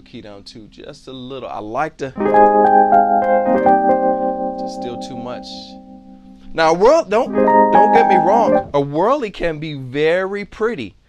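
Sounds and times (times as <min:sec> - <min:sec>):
electric piano chords: 0:02.2 - 0:08.8.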